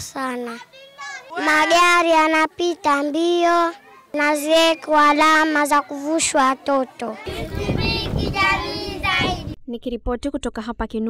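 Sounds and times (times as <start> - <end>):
children calling and chanting: 0.0 - 9.6
street noise rumble: 0.2 - 9.6.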